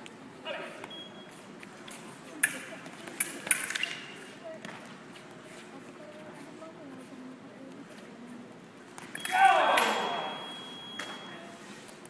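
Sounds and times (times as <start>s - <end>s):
fencing blades clashing: 1.8s - 4.3s, 9.0s - 11.2s.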